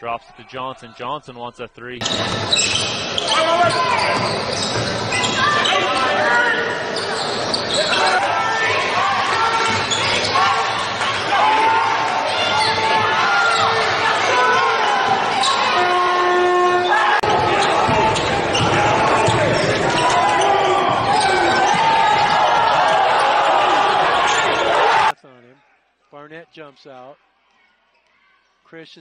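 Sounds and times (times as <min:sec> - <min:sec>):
crowd cheering: 0:02.1 - 0:25.2
steady horn tone: 0:15.7 - 0:17.2.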